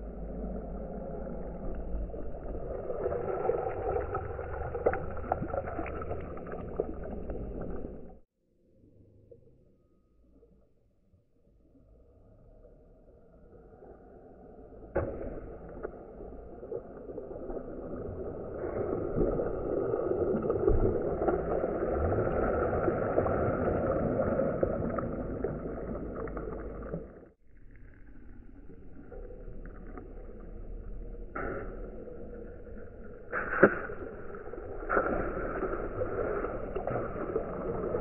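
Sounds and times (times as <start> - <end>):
stone splashing into water: 33.3 - 38.0
water spraying and splashing: 33.3 - 38.0.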